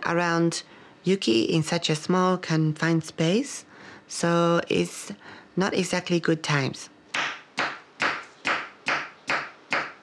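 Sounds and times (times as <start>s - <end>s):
knife chopping on cutting board: 7.1s - 10.0s.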